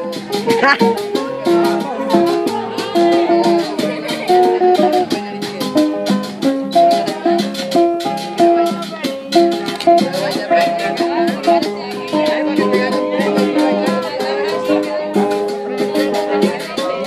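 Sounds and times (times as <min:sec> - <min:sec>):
acoustic guitars playing: 0:00.0 - 0:17.0
hand drum: 0:00.0 - 0:17.0.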